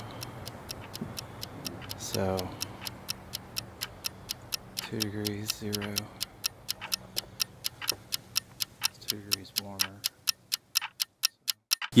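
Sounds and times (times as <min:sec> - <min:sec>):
clock ticking: 0:00.0 - 0:12.0.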